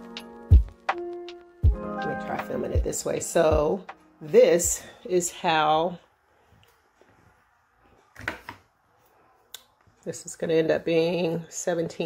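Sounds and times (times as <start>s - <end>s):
fabric rustling: 6.2s - 10.1s.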